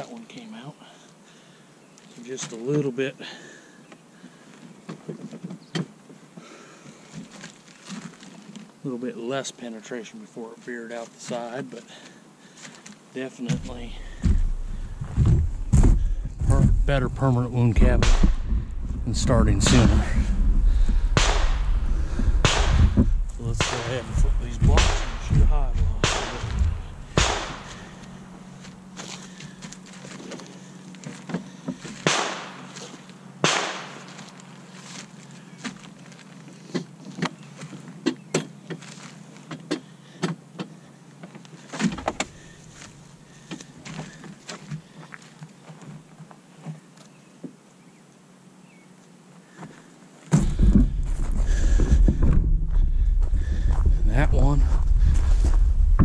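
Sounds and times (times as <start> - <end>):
faint low hum: 6.4 - 56.0.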